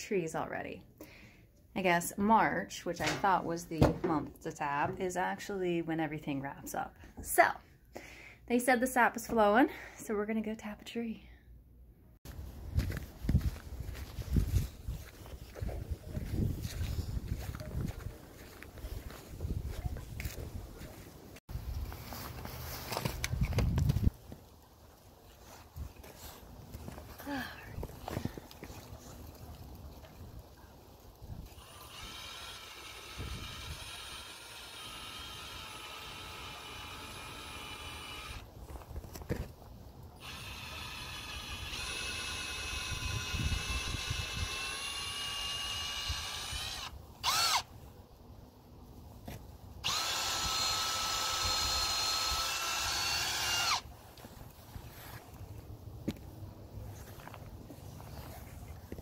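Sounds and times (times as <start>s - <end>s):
cordless drill motor whining: 31.4s - 38.4s, 40.2s - 47.7s, 49.8s - 53.9s.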